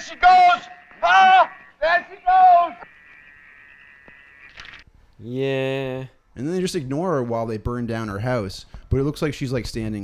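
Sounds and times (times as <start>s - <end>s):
frogs calling: 0.0s - 4.8s
insects chirping chorus: 0.0s - 4.8s.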